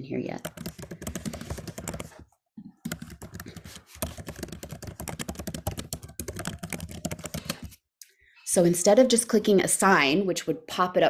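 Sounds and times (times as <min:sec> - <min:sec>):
fast typing on keyboard: 0:00.4 - 0:02.2, 0:02.8 - 0:07.8.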